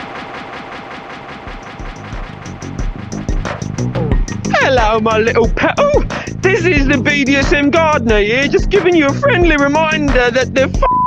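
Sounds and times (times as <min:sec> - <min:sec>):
steady high tone: 0:00.0 - 0:09.7
fast rattling buzz: 0:00.0 - 0:10.7
deep bass drum hits: 0:01.5 - 0:10.3.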